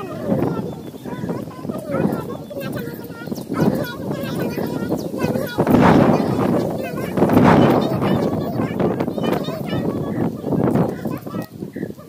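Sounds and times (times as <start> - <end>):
children's voices: 0.0 - 12.0
wind buffeting microphone: 0.0 - 12.0.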